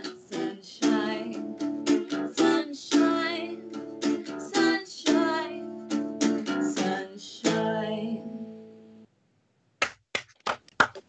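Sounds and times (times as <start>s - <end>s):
hand claps: 9.8s - 11.0s.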